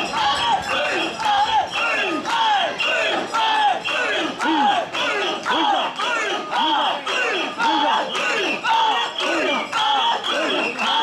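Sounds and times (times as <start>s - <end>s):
people shouting chant in unison: 0.0s - 11.0s.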